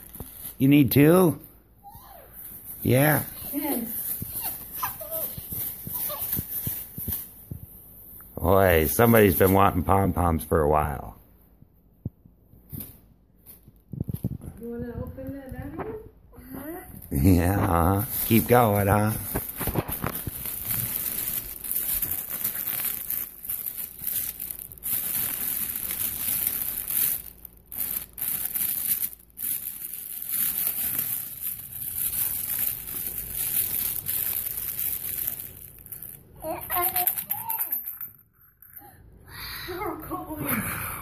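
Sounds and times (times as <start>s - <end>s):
child's voice: 14.6s - 17.0s, 36.4s - 37.8s, 38.8s - 41.0s
plastic packaging crinkling and tearing: 17.0s - 36.1s.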